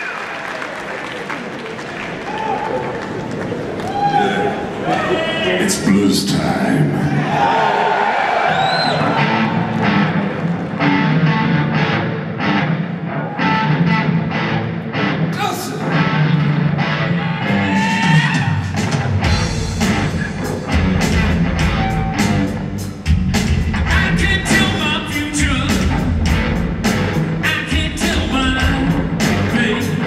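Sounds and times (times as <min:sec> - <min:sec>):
blues-rock band playing: 0:09.0 - 0:30.0.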